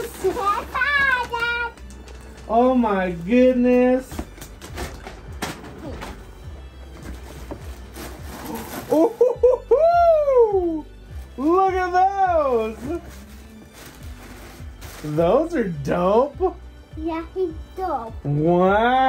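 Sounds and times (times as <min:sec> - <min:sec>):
tissue paper crinkling: 0:00.0 - 0:05.2, 0:06.9 - 0:09.9, 0:11.0 - 0:15.9
man exclaiming ooh: 0:09.6 - 0:10.8.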